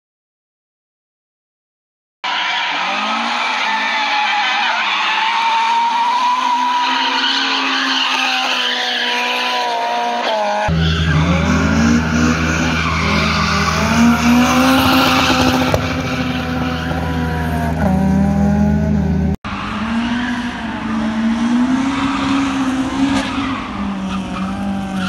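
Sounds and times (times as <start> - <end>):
car engines revving: 2.3 - 25.0
tyres squealing: 2.4 - 18.0.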